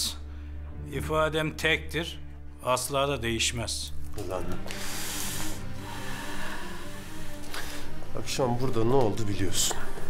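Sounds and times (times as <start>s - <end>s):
low sustained music score: 0.0s - 10.0s
breathy hiss: 4.6s - 8.1s.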